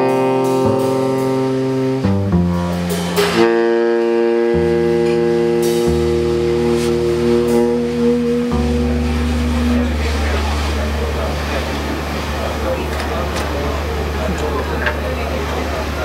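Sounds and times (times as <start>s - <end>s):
double bass notes: 0.0s - 16.0s
saxophones holding long notes: 0.0s - 16.0s.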